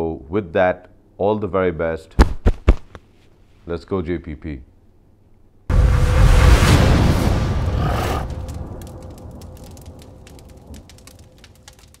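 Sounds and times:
low rumble: 5.7 - 12.0
scattered crackles: 5.7 - 12.0.

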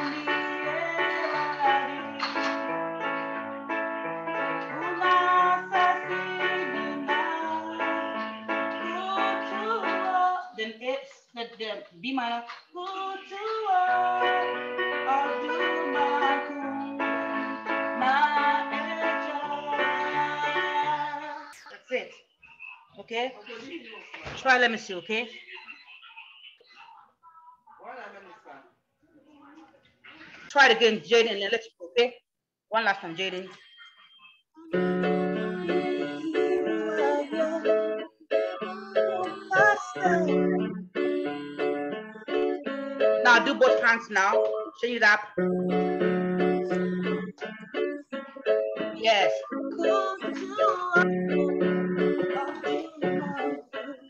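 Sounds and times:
electronic keyboard playing chords: 0.0 - 10.1, 14.0 - 21.0, 34.6 - 44.7, 45.3 - 54.0.

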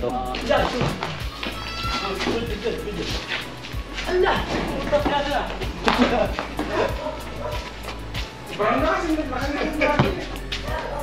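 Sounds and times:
basketball bouncing on concrete: 9.9 - 10.8.

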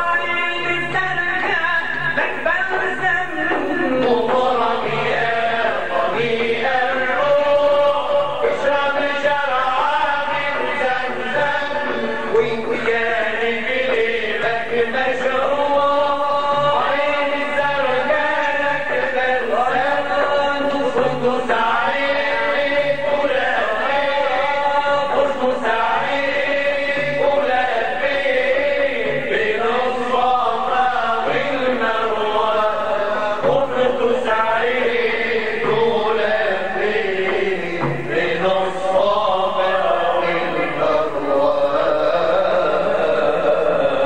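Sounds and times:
men chanting: 0.0 - 44.0
frame drums beating: 0.1 - 41.0.

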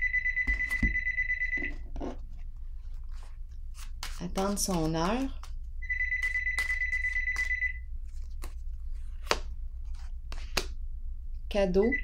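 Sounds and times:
low steady hum: 0.0 - 12.0
high-pitched warbling ringing tone: 5.8 - 7.8.

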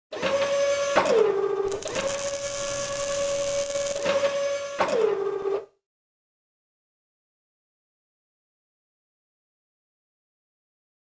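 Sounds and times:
hiss: 1.7 - 4.1
servo clicks: 1.7 - 4.1
robot servo motor whine: 1.7 - 4.2.

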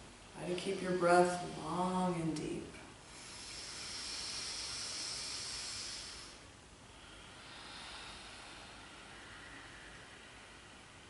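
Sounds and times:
person breathing deeply: 3.0 - 11.0.

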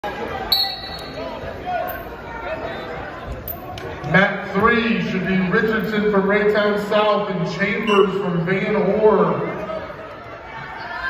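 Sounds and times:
spectators' voices: 0.0 - 11.0.

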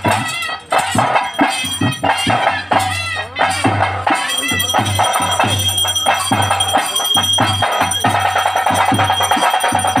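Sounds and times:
drums beating steady rhythm: 0.0 - 10.0
high ringing tone: 4.2 - 10.0.

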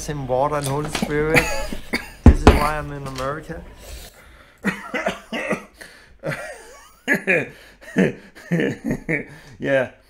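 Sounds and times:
man coughing: 1.4 - 2.8, 4.7 - 8.2.

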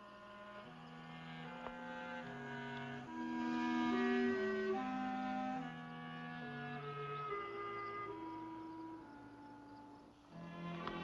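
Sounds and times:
orchestral string chords: 0.0 - 11.0.

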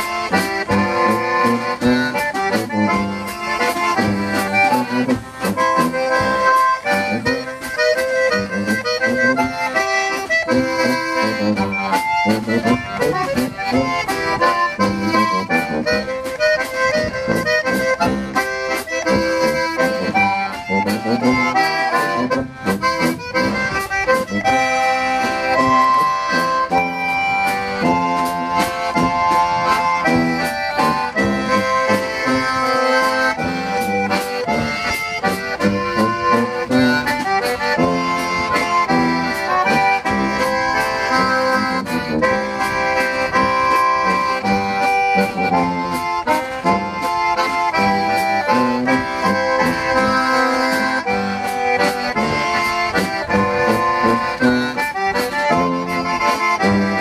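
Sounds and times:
concertina melody: 0.0 - 57.0
drum kit beat: 0.0 - 57.0
tuba: 0.0 - 57.0.

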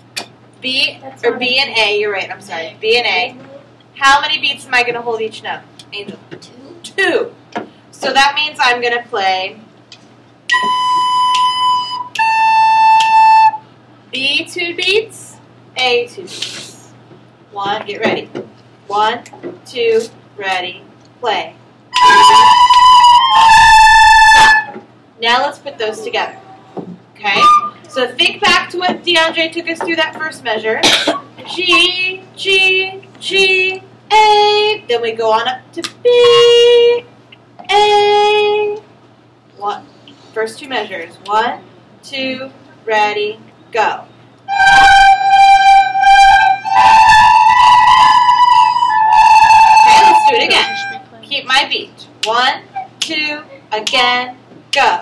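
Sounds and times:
recorders playing in unison: 21.9 - 24.8, 44.5 - 51.2.

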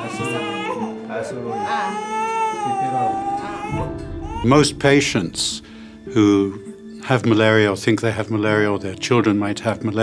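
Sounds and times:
infant crying: 0.0 - 5.3.

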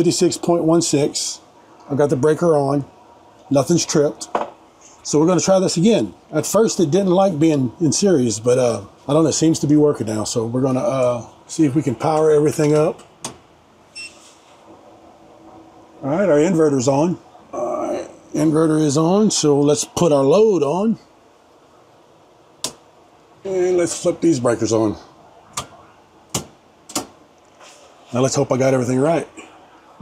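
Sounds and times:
short high beep: 14.0 - 14.2
circuit breaker clicks: 22.6 - 22.8, 25.5 - 27.2.

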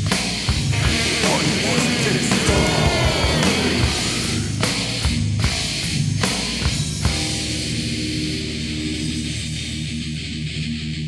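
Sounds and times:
distorted electric guitar riff: 0.0 - 11.0.

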